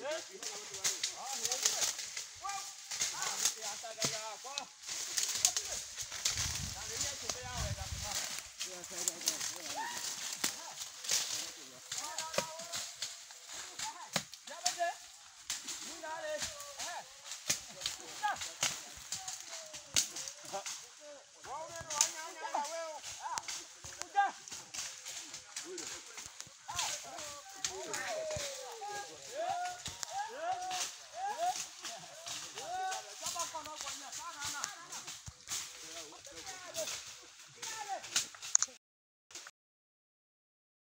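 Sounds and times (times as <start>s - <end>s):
voices talking: 0.0s - 38.7s
small clicks and crackles: 0.1s - 38.8s
machete chopping brush: 0.4s - 20.8s.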